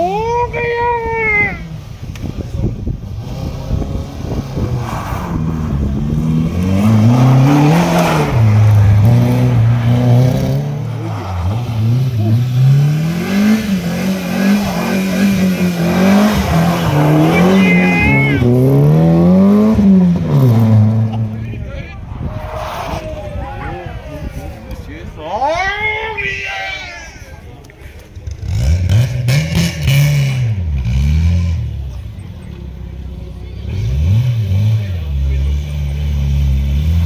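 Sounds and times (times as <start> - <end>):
rally car engine revving: 1.5 - 23.4, 28.2 - 37.0.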